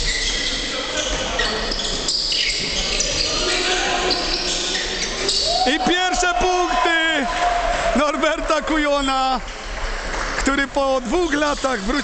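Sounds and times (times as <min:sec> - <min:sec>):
sneakers squeaking: 0:00.0 - 0:05.8
players' voices: 0:00.0 - 0:12.0.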